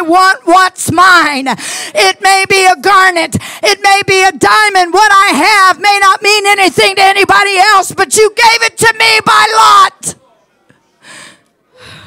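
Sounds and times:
breaths into a microphone: 1.6s - 2.0s, 3.4s - 3.6s, 10.7s - 12.0s.

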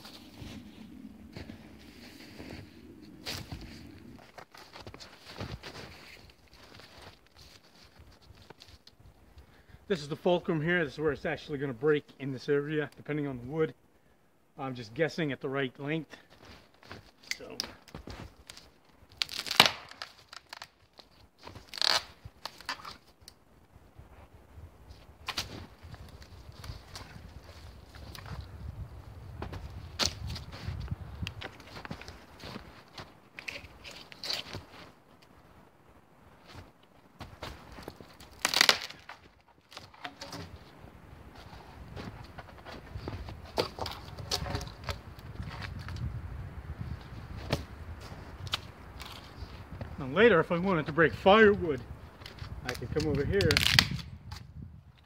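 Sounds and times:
dead wood cracking: 16.3s - 23.4s, 29.5s - 35.2s, 36.4s - 40.7s, 41.3s - 46.1s, 48.3s - 49.6s, 52.0s - 55.0s
sticks rustling: 30.0s - 35.4s, 36.3s - 46.1s.

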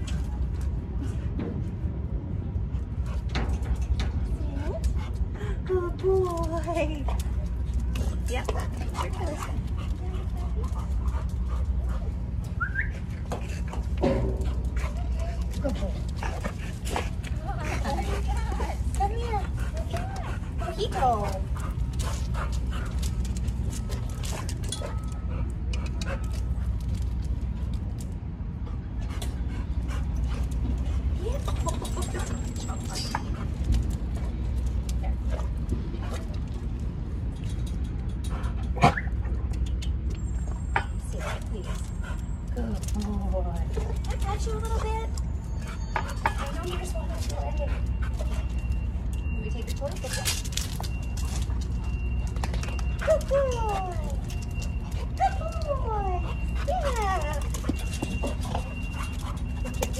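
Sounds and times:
steady low rumble: 0.0s - 59.9s
dog claws clicking on concrete: 6.2s - 59.9s
dog whimpering: 55.0s - 59.9s.

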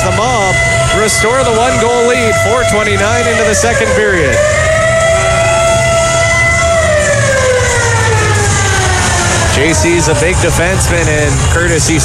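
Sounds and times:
arena goal horn: 0.0s - 7.6s.

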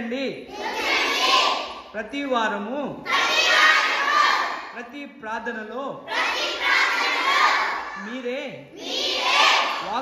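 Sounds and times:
women praying aloud: 0.5s - 2.0s, 3.0s - 4.8s, 6.0s - 8.2s, 8.8s - 10.0s.

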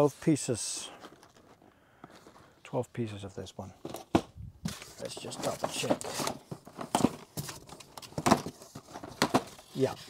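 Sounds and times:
cardboard boxes scuffing and tapping: 3.8s - 10.0s.

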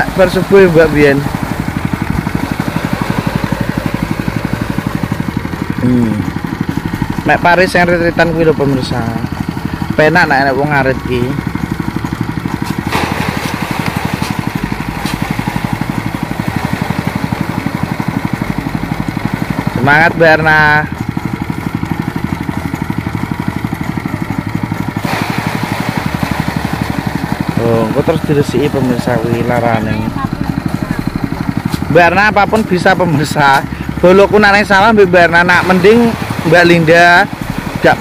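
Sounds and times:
voices talking: 0.0s - 11.7s, 27.5s - 38.0s
small engine running: 0.0s - 38.0s.

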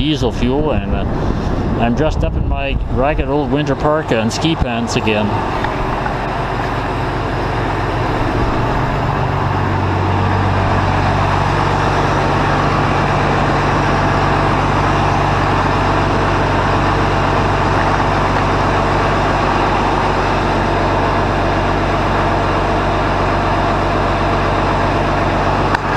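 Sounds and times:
diesel tractor engine idling: 0.0s - 25.9s.

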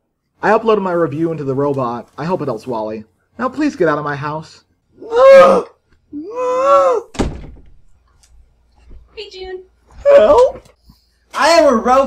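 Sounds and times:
door slamming shut: 7.1s - 7.9s.

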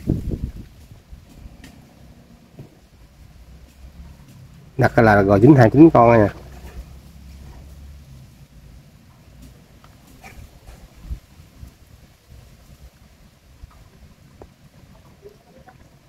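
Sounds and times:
low uneven rumble: 0.0s - 16.0s.

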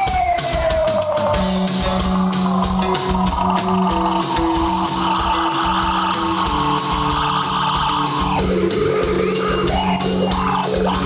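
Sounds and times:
bass: 0.0s - 11.0s
electric guitar chords: 0.0s - 11.0s
steady drum beat: 0.0s - 11.0s
bending melody line: 0.4s - 11.0s.

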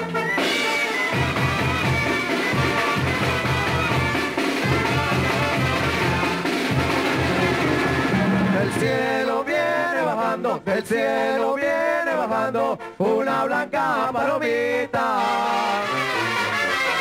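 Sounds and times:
drums: 0.0s - 10.2s
trumpets and trombones melody: 0.0s - 17.0s
tuba bass line: 0.0s - 17.0s.

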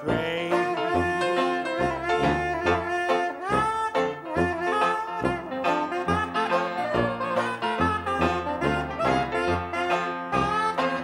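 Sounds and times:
brass horns melody: 0.0s - 11.0s
jazz band playing: 0.0s - 11.0s
low bass notes: 0.0s - 11.0s.

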